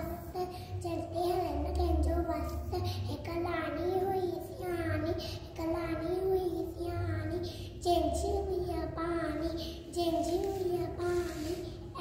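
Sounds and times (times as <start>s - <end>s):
boy singing unaccompanied: 0.8s - 12.0s.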